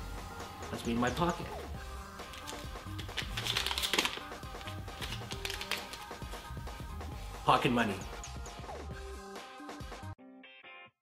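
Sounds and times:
background music: 0.0 - 11.0
paper banknote rustling: 2.2 - 6.2.

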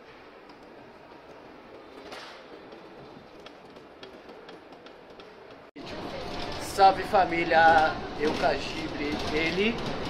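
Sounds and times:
faint station platform hum: 0.0 - 10.0.

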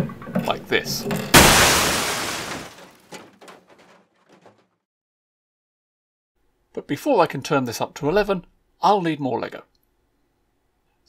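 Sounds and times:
toy loud crash: 1.3 - 4.0.

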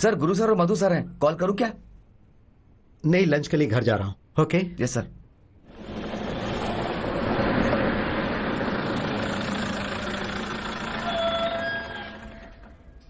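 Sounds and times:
car driving past: 5.7 - 12.8.

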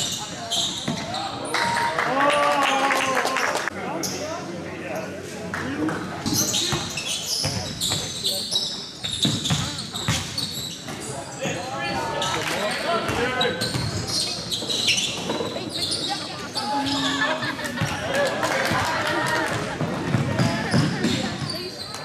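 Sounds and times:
basketball bouncing on court: 6.7 - 8.2, 9.0 - 10.4, 13.1 - 14.5, 19.5 - 21.6.

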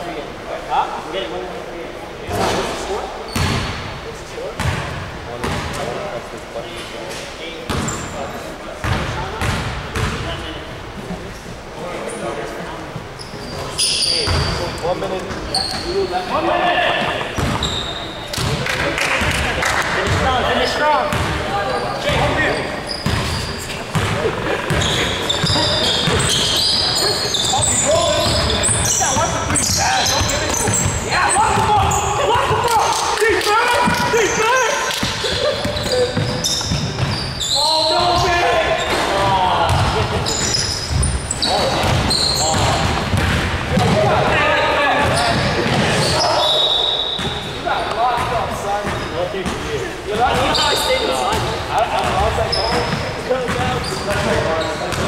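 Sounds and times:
players calling out: 13.4 - 55.0.

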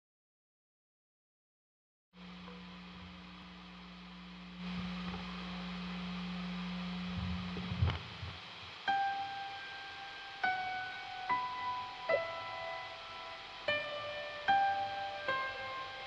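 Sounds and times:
guitar amp hum and hiss: 2.2 - 16.0
sustained piano note: 8.9 - 16.0.

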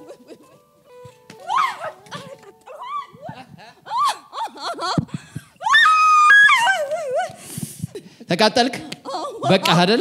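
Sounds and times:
woman screaming: 1.4 - 5.0, 5.6 - 7.3.

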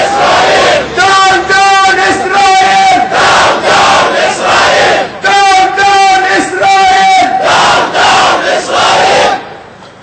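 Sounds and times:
crowd shouting in unison: 0.0 - 9.6
person shouting call: 5.2 - 7.4.

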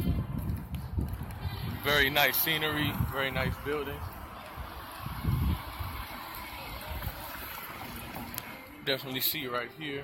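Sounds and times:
wind buffeting microphone: 0.0 - 8.6
street rush: 0.0 - 9.5.

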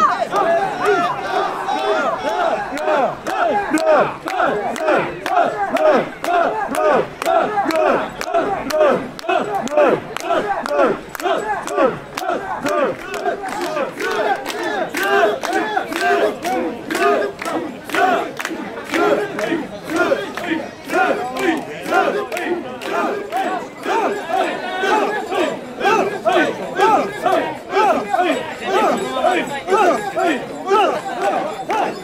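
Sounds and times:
men shouting rhythmic chant: 0.0 - 32.0.

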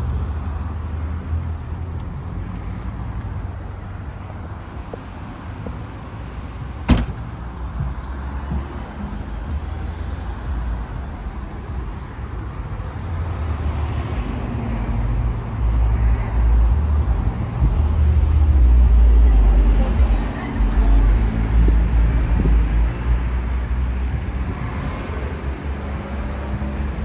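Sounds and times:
traffic rumble: 0.0 - 27.0.

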